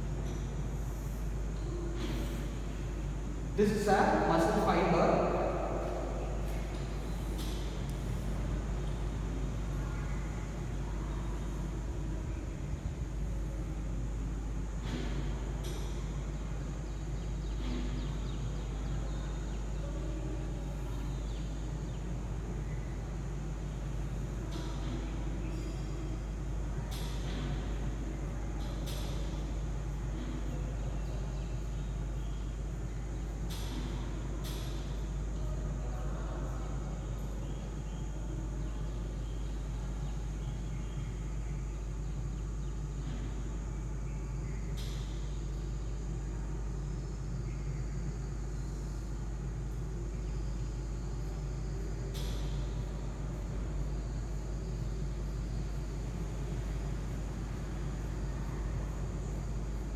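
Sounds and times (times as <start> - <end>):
steady low hum: 0.0 - 59.9.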